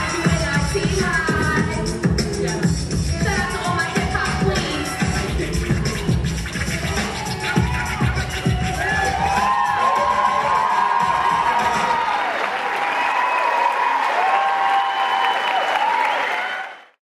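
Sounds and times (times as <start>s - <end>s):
audience applauding: 6.5s - 17.0s
shouted whoops: 6.9s - 16.8s.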